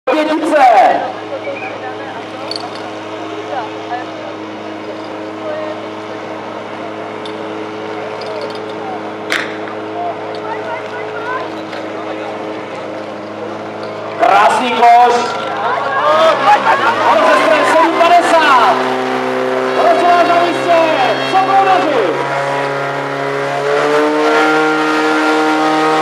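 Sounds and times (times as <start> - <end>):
crowd chatter: 0.1 - 23.8
sharp crack: 9.3 - 9.8.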